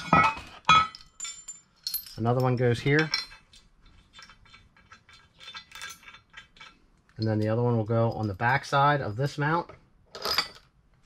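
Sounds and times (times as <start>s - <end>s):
metal bolts clinking: 0.0s - 8.8s.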